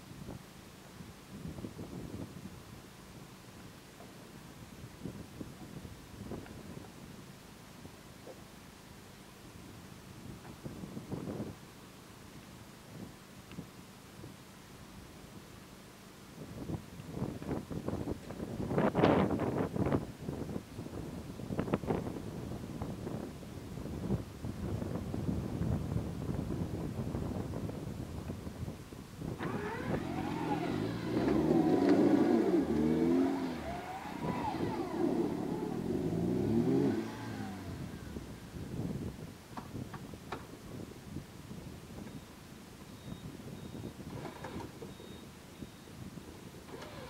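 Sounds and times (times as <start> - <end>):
wheels spinning: 29.4 - 38.3
off-road vehicle engine revving: 29.4 - 38.4, 44.1 - 45.0, 46.6 - 47.0.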